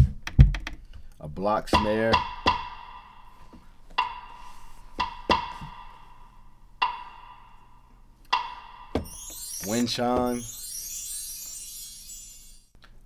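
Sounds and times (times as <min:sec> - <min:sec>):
wood block strikes: 0:01.7 - 0:03.2, 0:04.0 - 0:04.4, 0:05.0 - 0:06.1, 0:06.8 - 0:07.7, 0:08.3 - 0:10.8.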